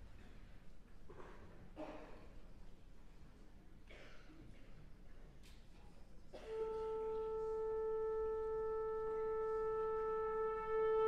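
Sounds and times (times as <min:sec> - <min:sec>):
wind instrument holding long note: 0:06.5 - 0:11.0.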